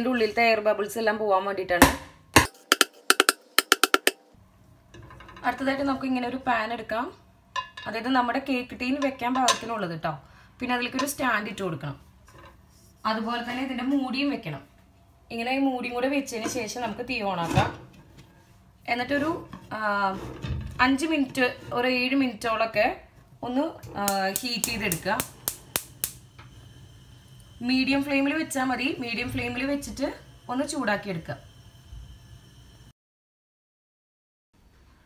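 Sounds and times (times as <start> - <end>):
metal tin knocking on stone: 1.8 - 4.2
woman talking: 7.9 - 12.0, 15.3 - 17.8, 18.9 - 20.2, 20.8 - 25.2, 27.6 - 31.4.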